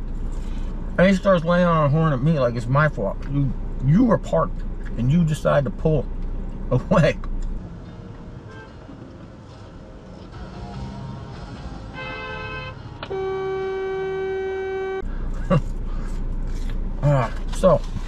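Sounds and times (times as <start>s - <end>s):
car horn: 8.4s - 8.9s, 11.8s - 15.2s.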